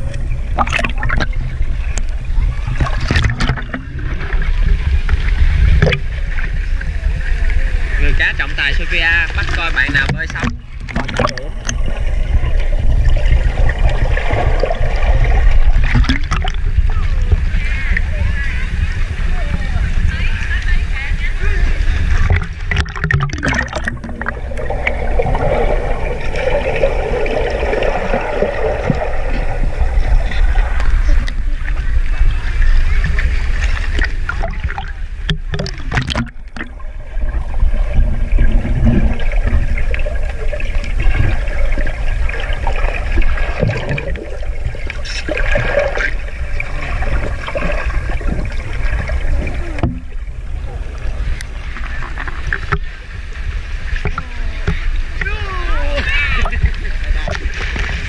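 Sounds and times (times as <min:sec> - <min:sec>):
heavy low rumble: 0:00.0 - 0:58.0
muffled underwater sound: 0:00.0 - 0:58.0
pool water sloshing and splashing: 0:00.0 - 0:58.0
water buffeting camera housing: 0:09.9 - 0:11.9, 0:34.0 - 0:36.8.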